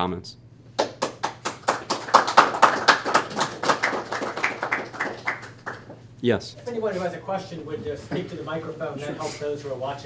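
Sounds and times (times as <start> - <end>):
audience clapping: 0.8 - 6.0.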